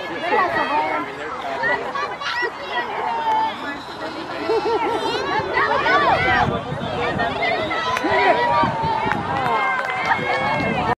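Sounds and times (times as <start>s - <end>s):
people calling and chattering: 0.0s - 11.0s.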